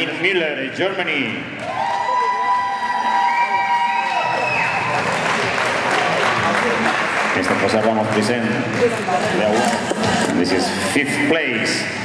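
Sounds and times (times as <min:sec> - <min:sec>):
audience applauding: 0:01.6 - 0:09.9.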